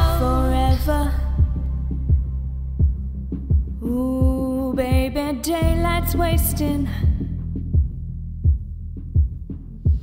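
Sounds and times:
deep kick drum thumps: 0.0s - 10.0s
sustained low bass: 0.0s - 10.0s.

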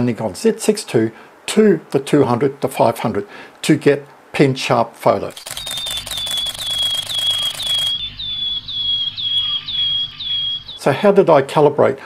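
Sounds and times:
rapid clicking: 5.3s - 8.0s
high bird-like chirp: 5.4s - 10.8s.

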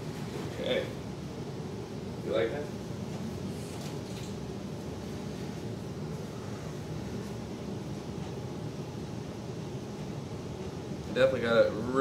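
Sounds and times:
low background hum and hiss: 0.0s - 12.0s.

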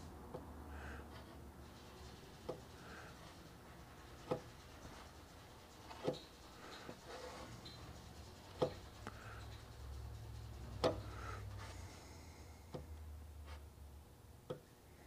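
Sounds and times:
low hum: 0.0s - 14.1s
spreader scraping body filler: 0.3s - 13.8s.

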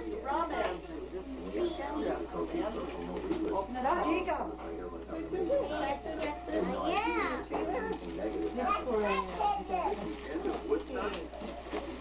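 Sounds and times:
children and adults chattering: 0.0s - 12.0s.

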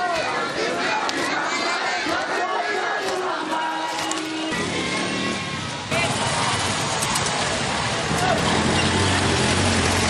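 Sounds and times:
crowd of men chanting: 0.1s - 5.3s.

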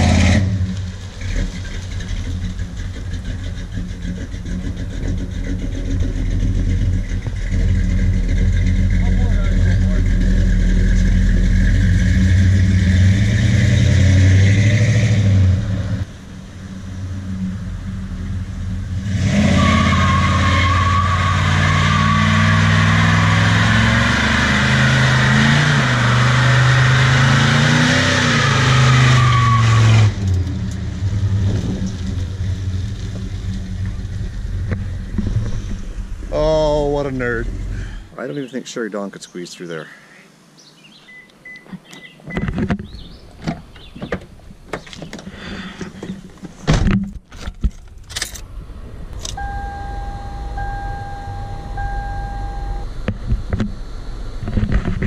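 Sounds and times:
car engine revving hard: 0.0s - 0.8s, 4.4s - 16.1s, 18.8s - 33.0s
tyres squealing on pavement: 19.2s - 30.3s.

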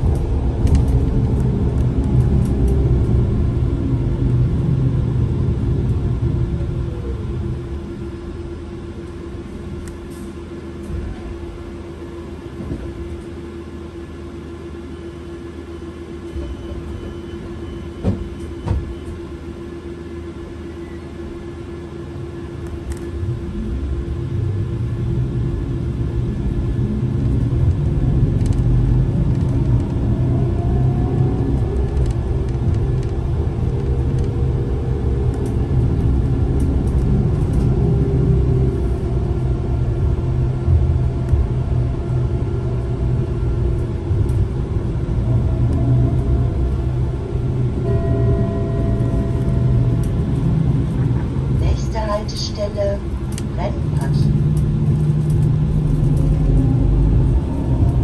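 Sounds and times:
trolleybus low rumble: 0.0s - 58.0s.

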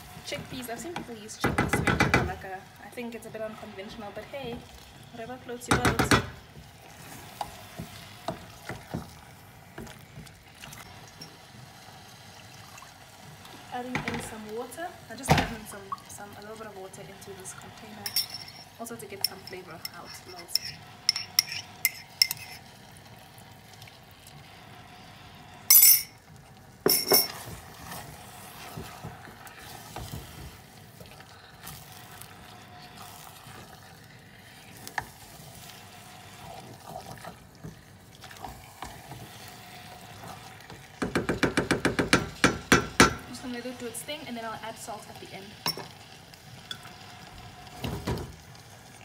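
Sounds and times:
stew sizzling: 0.0s - 49.0s
spoon scraping pot: 17.6s - 22.7s, 26.9s - 43.3s
metal spoon clinking: 18.0s - 22.6s, 25.7s - 26.2s, 26.9s - 27.4s.

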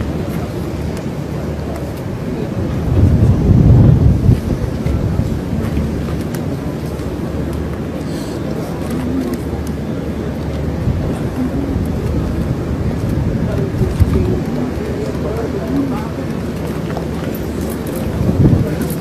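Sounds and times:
low engine rumble: 0.0s - 19.0s
wind buffeting microphone: 0.0s - 19.0s.

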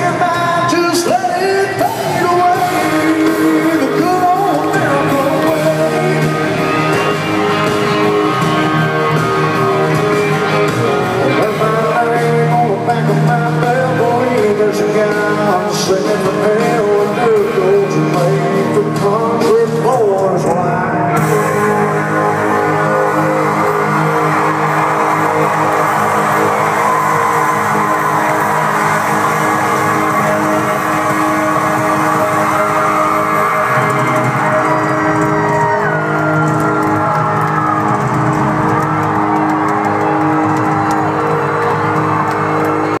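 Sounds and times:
live country-rock band: 0.0s - 43.0s.

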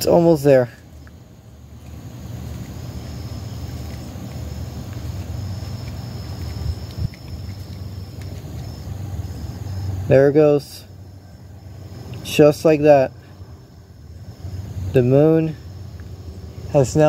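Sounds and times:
faint high steady tone: 0.0s - 14.2s
low outdoor rumble: 0.0s - 17.0s.

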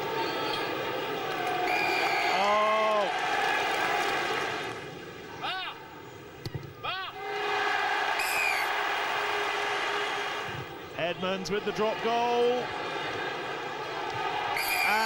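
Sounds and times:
crowd cheering and shouting: 0.0s - 4.8s, 6.9s - 15.0s
shouted calls: 6.9s - 9.0s, 14.4s - 15.0s.

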